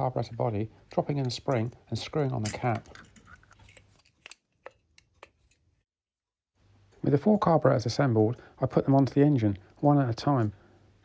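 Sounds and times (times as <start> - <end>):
small metal parts clicking: 0.9 - 5.6.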